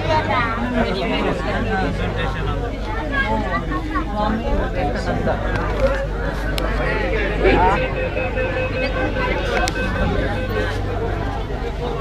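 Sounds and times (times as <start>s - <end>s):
passengers chattering: 0.0s - 12.0s
train low rumble: 0.0s - 12.0s
train whine: 6.1s - 12.0s.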